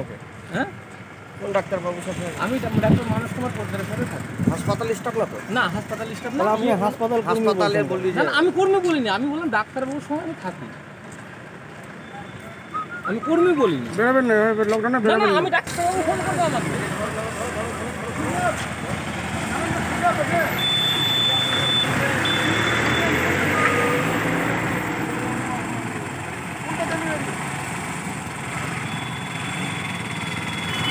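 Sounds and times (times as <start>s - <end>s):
people talking: 1.4s - 10.7s, 12.9s - 24.2s, 24.8s - 27.4s
auto-rickshaw engine idling: 15.6s - 30.9s.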